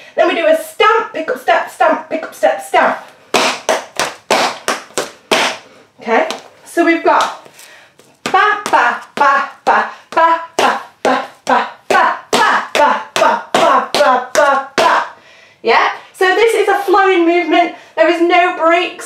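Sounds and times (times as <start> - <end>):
woman's voice: 0.1 - 3.1, 6.0 - 7.5, 8.2 - 19.0
tap shoes striking hard floor: 3.3 - 5.7, 6.3 - 6.5, 11.9 - 15.0.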